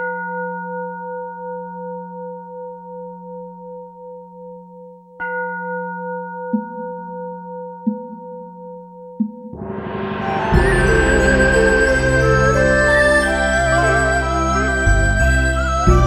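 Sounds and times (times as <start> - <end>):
bowl bell ringing: 9.6 - 16.0.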